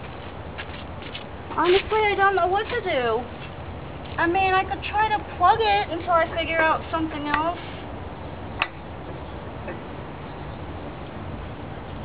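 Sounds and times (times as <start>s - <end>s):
steady outdoor hiss: 0.0s - 12.0s.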